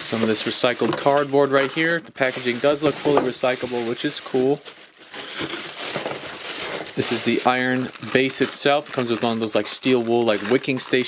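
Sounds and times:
plastic wrap crinkling: 0.0 - 11.0.

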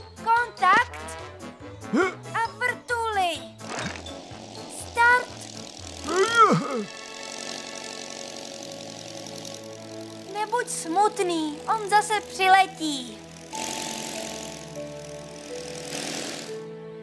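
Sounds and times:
background music: 0.0 - 17.0
cartoon propeller plane engine droning: 3.0 - 16.7.

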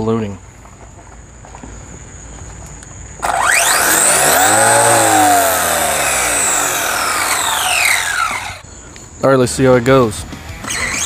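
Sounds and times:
electric motor whine: 3.2 - 8.6.

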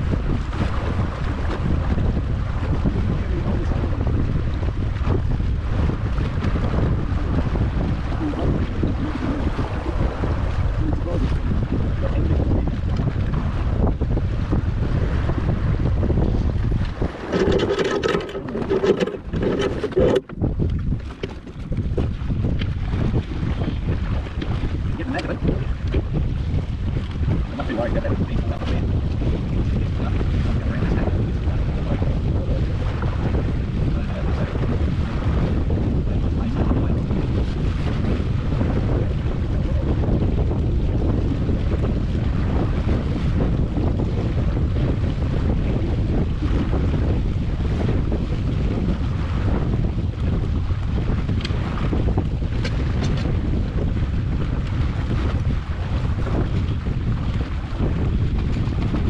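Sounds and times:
water rushing along hull: 0.0 - 59.0
wind buffeting microphone: 0.0 - 59.0.

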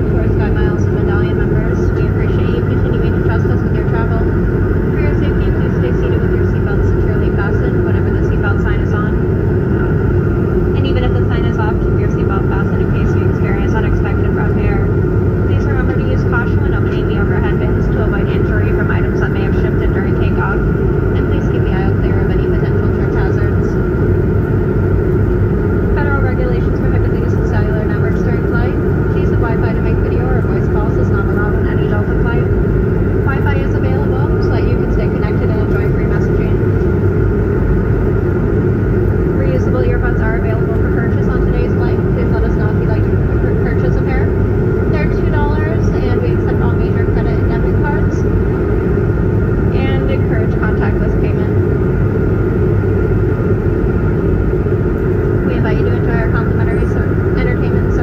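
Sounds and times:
faint passenger voices: 0.0 - 23.8, 26.0 - 37.0, 39.2 - 48.9, 49.6 - 51.9, 55.4 - 58.0
jet airliner cabin noise: 0.0 - 58.0.

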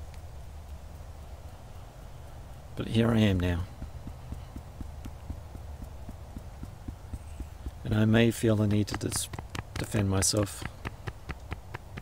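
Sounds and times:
fingertips tapping: 0.7 - 12.0.

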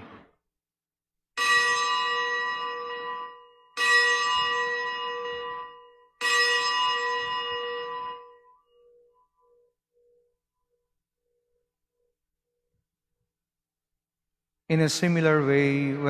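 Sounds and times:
altar bell ringing: 1.4 - 10.4.

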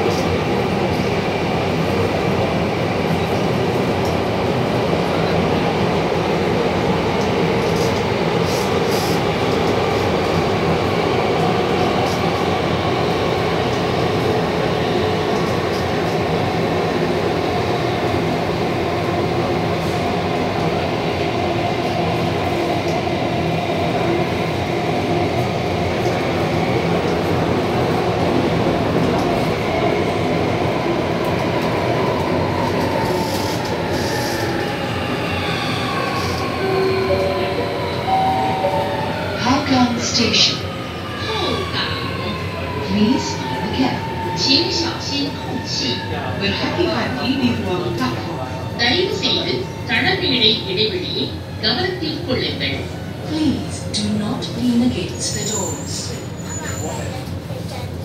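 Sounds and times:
metro train rumble and motor whine: 0.0 - 58.0.

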